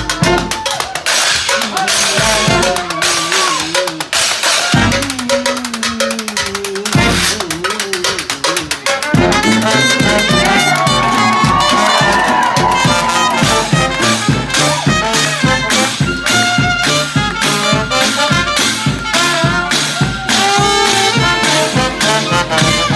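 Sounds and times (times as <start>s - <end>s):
traditional jazz band playing: 0.0s - 22.9s
washboard and cymbal rhythm: 0.0s - 22.9s.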